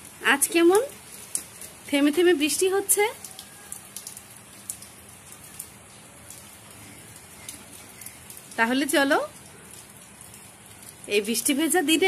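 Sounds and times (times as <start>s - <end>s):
rain on a flat rooftop: 0.0s - 12.0s
drip ticks: 1.3s - 1.7s, 3.2s - 6.5s.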